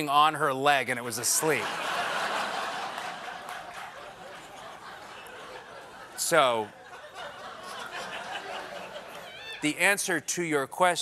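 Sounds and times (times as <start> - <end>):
audience laughing: 1.3 - 9.7.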